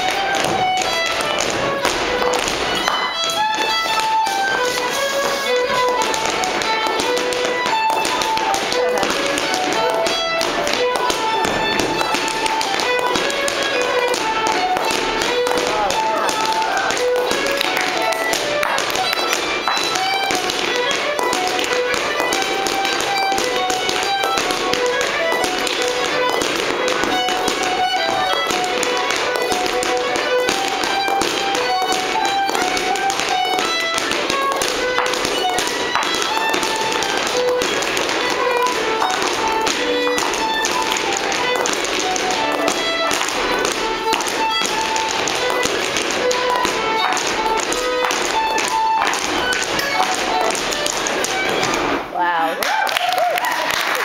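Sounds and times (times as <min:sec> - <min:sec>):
feet tapping on wooden floor: 0:00.0 - 0:52.1
lively dance tune: 0:00.0 - 0:52.6.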